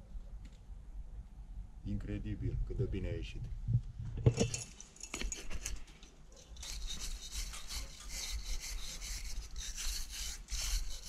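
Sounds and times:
wire brush scrubbing brick: 0:06.4 - 0:11.0.

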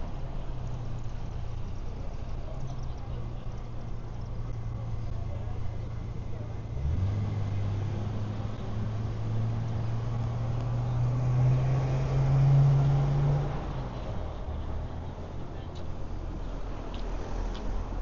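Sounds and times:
street background: 0:00.0 - 0:18.0
vehicle engine hum: 0:00.0 - 0:18.0.

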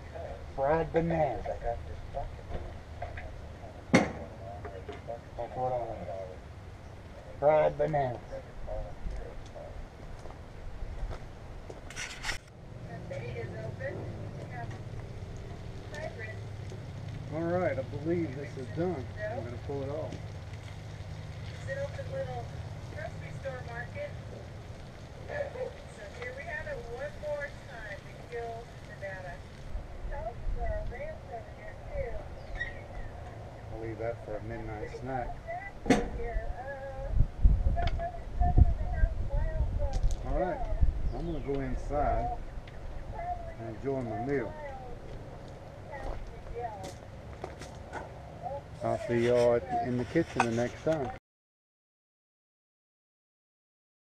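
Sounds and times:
low steady rumble: 0:00.0 - 0:51.1
steady low hum: 0:00.0 - 0:51.2.

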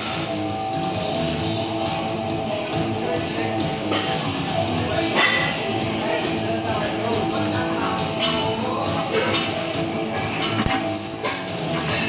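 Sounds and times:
guitar-led music: 0:00.0 - 0:12.0.

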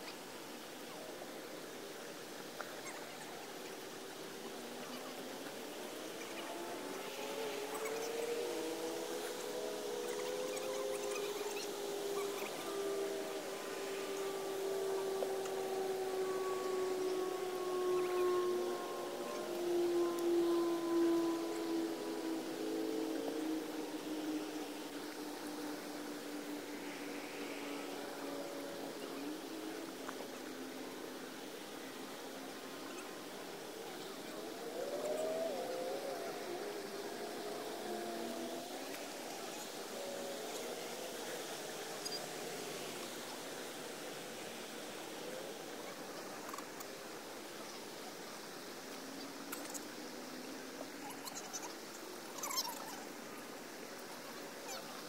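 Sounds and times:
faint wavering tones: 0:00.0 - 0:55.0
distant engine drone: 0:04.5 - 0:45.0.

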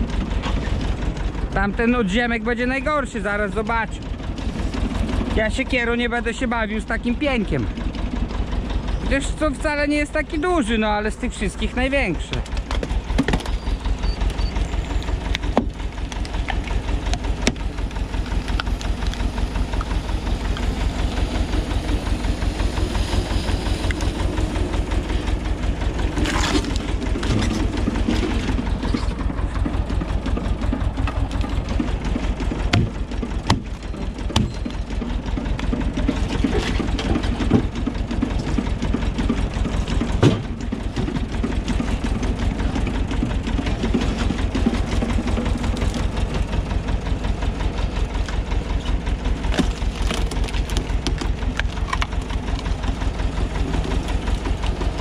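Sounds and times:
tractor engine running: 0:00.0 - 0:55.0
wood cracking apart: 0:15.0 - 0:20.8, 0:25.4 - 0:55.0.

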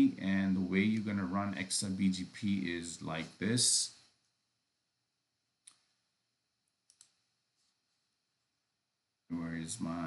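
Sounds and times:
faint computer mouse clicks: 0:05.6 - 0:05.9, 0:06.8 - 0:07.2.

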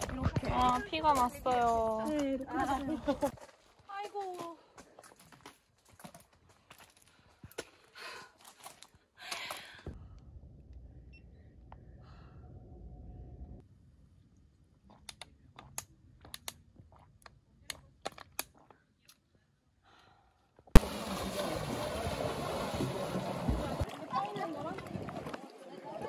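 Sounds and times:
voice: 0:00.0 - 0:03.3, 0:23.6 - 0:26.0
water wash: 0:20.8 - 0:26.0.

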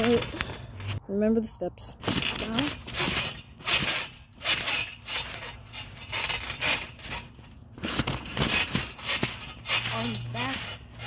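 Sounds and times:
trampoline mat and springs rustling: 0:00.0 - 0:11.0.

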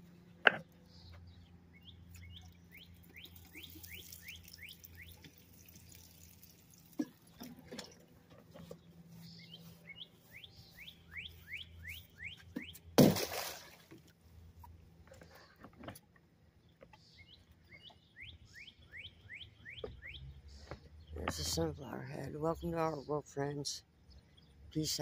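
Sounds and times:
low steady hum: 0:00.0 - 0:19.0
songbird whistling: 0:01.7 - 0:05.2, 0:09.2 - 0:12.8, 0:17.2 - 0:20.3.

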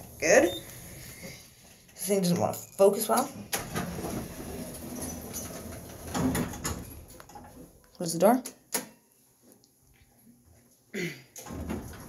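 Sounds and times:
elevator door sliding: 0:03.6 - 0:07.1.

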